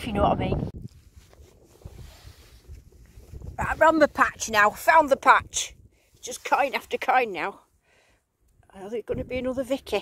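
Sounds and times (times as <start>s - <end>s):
wind buffeting microphone: 0.0s - 7.0s, 9.0s - 10.0s.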